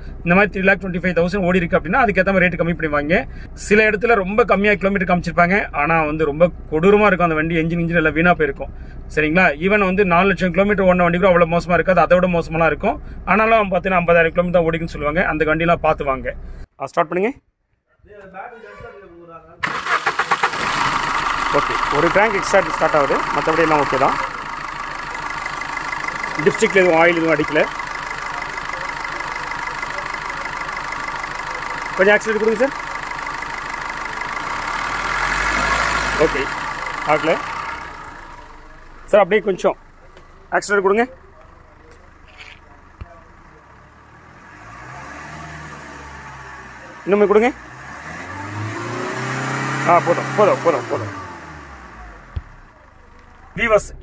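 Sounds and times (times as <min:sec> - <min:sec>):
diesel engine starting and running: 0:00.0 - 0:16.7, 0:18.3 - 0:54.0.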